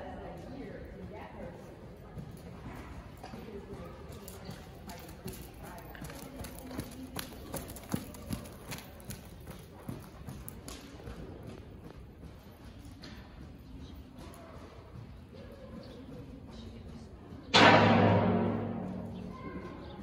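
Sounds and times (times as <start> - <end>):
hooves trotting on sand: 0.0 - 17.5
sharp knocks: 17.6 - 19.6.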